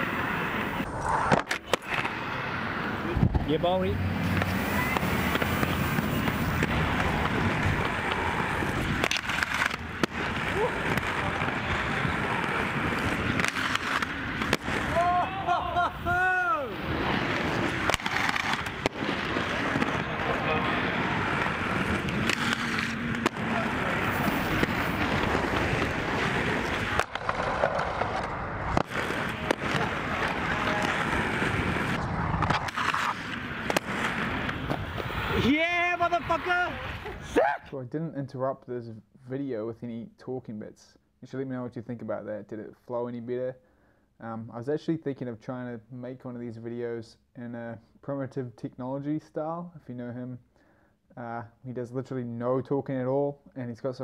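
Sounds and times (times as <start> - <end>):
skate wheels rolling on concrete: 0.0 - 37.6
skate wheels knocking and clacking: 4.3 - 15.1, 17.0 - 35.2.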